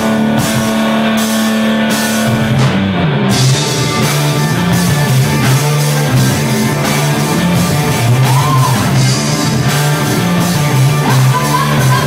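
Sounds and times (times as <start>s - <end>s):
drums and cymbals: 0.0s - 12.0s
electric guitars ringing chord: 0.0s - 12.0s.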